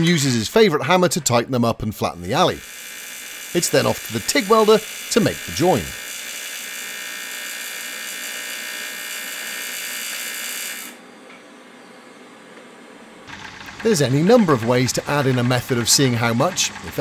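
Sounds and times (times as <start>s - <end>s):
welding arc buzzing: 2.2s - 11.0s, 13.3s - 17.0s.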